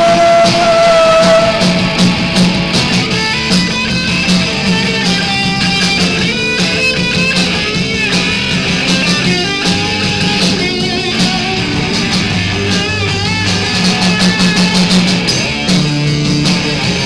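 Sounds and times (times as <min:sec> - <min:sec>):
electric guitar: 0:00.0 - 0:17.0
live punk rock band: 0:00.0 - 0:17.0.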